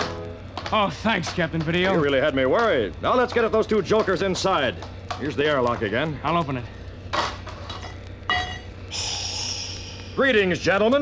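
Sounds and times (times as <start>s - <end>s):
steady low hum: 0.0s - 11.0s
ringing metallic clang: 7.8s - 8.7s.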